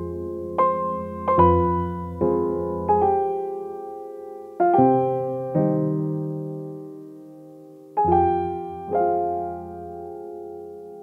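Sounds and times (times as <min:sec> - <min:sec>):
soft piano chords: 0:00.0 - 0:11.0.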